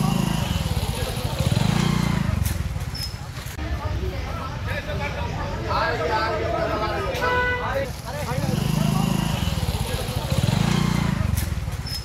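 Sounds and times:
motorcycle engine running: 0:00.0 - 0:03.0, 0:07.9 - 0:12.0
crowd voices: 0:00.0 - 0:11.8.

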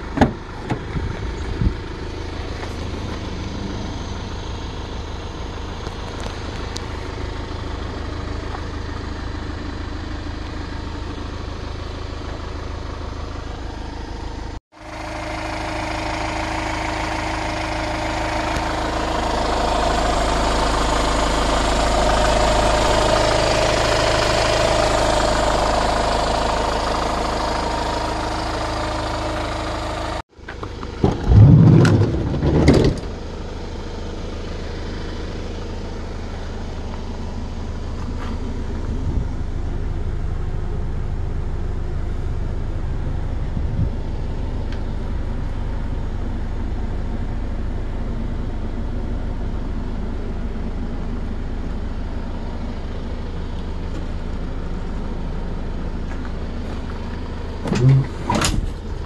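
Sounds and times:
van engine idling: 0:00.0 - 0:59.0.

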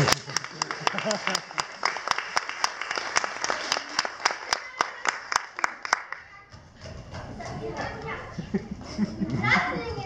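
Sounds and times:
children speaking and calling out: 0:07.2 - 0:08.5, 0:09.2 - 0:10.0.

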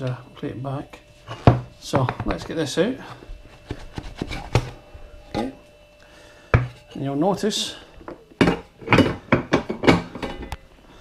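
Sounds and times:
metal pan knocking and clunking: 0:08.4 - 0:10.6.

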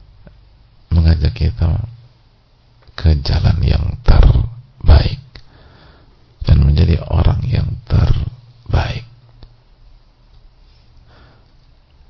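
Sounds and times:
low steady hum: 0:00.0 - 0:12.0
man speaking: 0:00.9 - 0:02.0, 0:03.0 - 0:05.3, 0:06.4 - 0:09.2.

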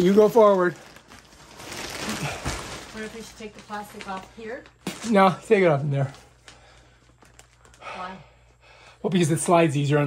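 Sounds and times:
plastic wrap rustling: 0:00.0 - 0:07.9.

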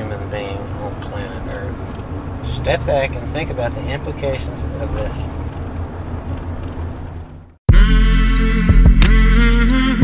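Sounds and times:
loud music with sustained notes: 0:07.7 - 0:10.0.

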